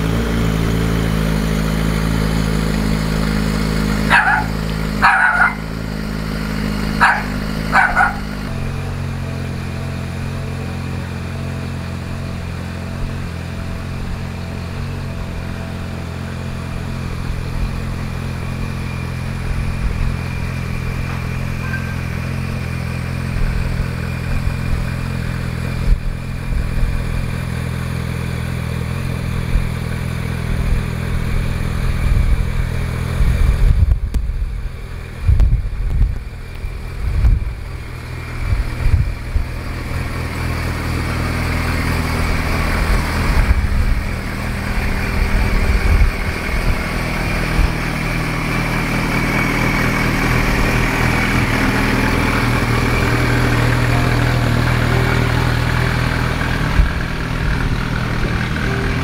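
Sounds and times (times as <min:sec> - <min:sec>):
motorcycle engine idling: 0:00.0 - 0:59.0
dog barking: 0:04.1 - 0:05.7, 0:07.0 - 0:08.3.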